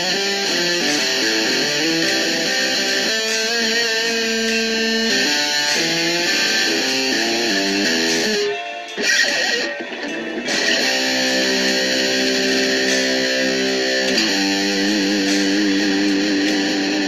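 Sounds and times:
electric guitar melody: 0:00.0 - 0:17.0
muted scratchy guitar strokes: 0:00.0 - 0:17.0.

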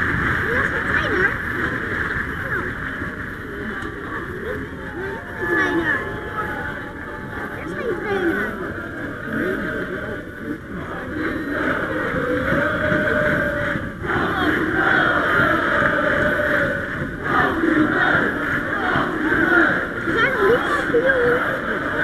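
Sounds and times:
stadium crowd singing and chanting: 0:00.0 - 0:22.0.

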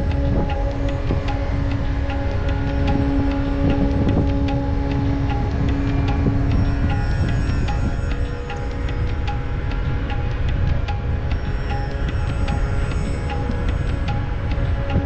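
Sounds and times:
slow droning music: 0:00.0 - 0:15.0
steady low rumble: 0:00.0 - 0:15.0.

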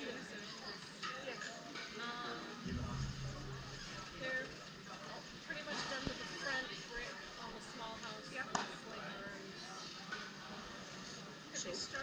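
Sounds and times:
indistinct voices: 0:02.6 - 0:04.6
sharp knocks: 0:02.7 - 0:04.3.

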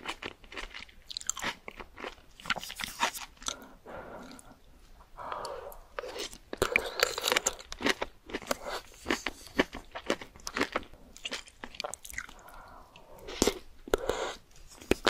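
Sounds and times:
person chewing: 0:00.0 - 0:04.6, 0:05.2 - 0:15.0.

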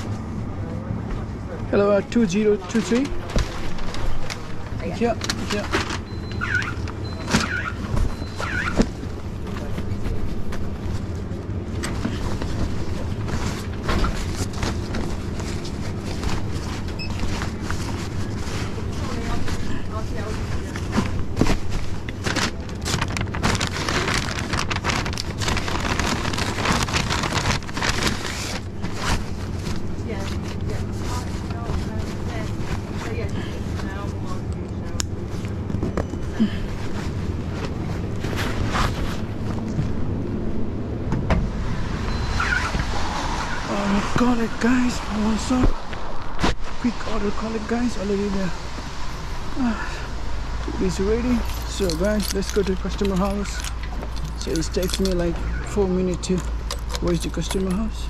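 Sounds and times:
paper bag rustling: 0:02.3 - 0:11.3, 0:12.0 - 0:34.4, 0:50.8 - 0:58.0.

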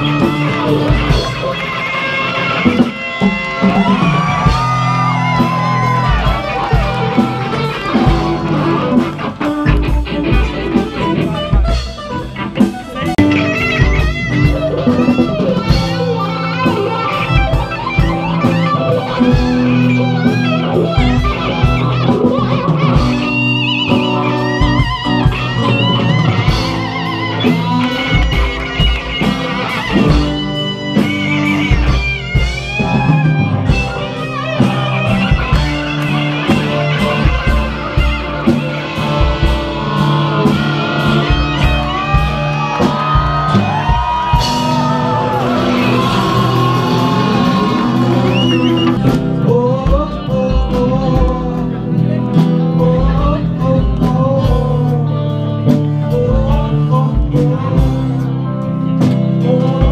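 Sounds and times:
drum kit: 0:00.0 - 0:59.9
electric guitar lead: 0:00.0 - 0:59.9.

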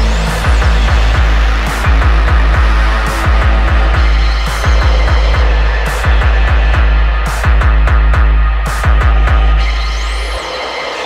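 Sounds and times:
deep bass: 0:00.0 - 0:10.4
rapid kick drum: 0:00.0 - 0:10.4.

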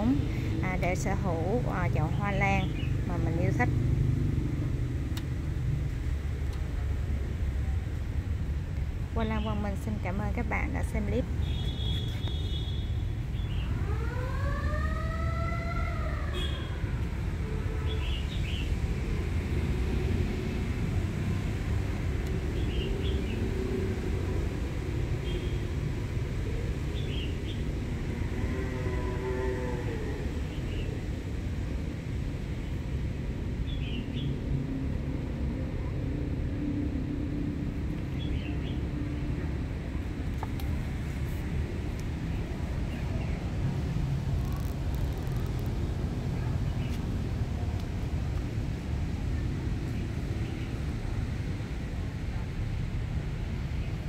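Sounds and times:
road traffic rumble: 0:00.0 - 0:54.0.

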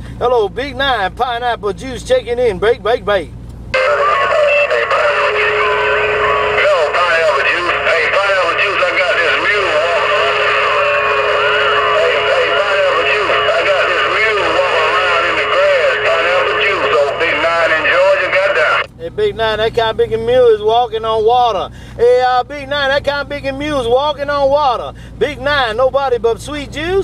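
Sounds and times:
garbled voices over radio: 0:03.8 - 0:18.9
steady radio whistle: 0:03.8 - 0:18.9.

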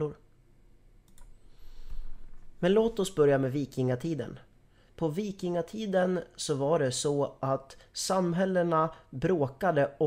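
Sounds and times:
computer mouse clicks: 0:01.0 - 0:01.4.

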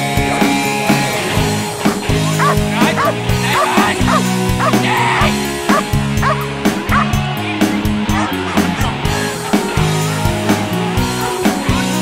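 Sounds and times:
rock music with guitar: 0:00.0 - 0:12.0
dog yipping and barking: 0:01.9 - 0:04.8, 0:05.7 - 0:07.1.

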